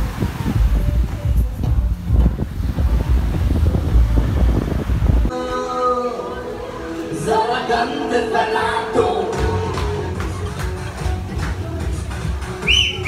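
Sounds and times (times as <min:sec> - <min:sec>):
sea surf washing on beach: 0:00.0 - 0:05.3
wind buffeting microphone: 0:00.0 - 0:05.3
music: 0:00.0 - 0:13.0.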